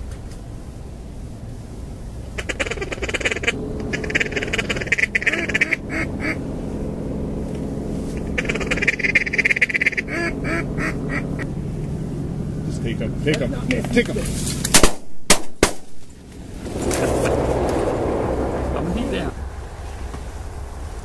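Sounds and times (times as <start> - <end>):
duck quacking: 2.4 - 6.4, 8.1 - 11.5.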